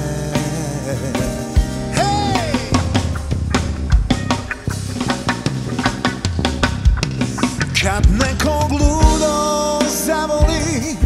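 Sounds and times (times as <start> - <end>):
drum kit beat: 0.0 - 11.0
live pop-rock band playing: 0.0 - 11.0.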